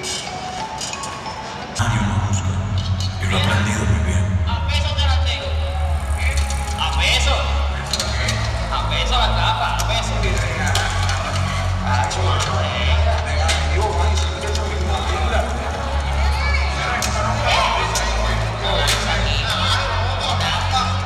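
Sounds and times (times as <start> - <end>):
voice over music: 0.0 - 21.0
loud music with heavy bass: 1.8 - 21.0.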